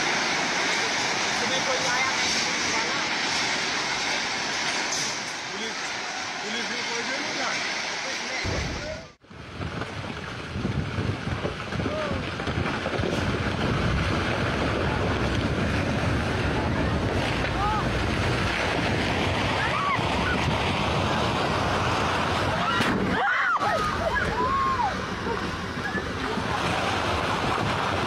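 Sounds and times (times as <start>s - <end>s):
wind buffeting microphone: 8.4s - 28.0s
roar of rock and earth falling: 8.5s - 28.0s.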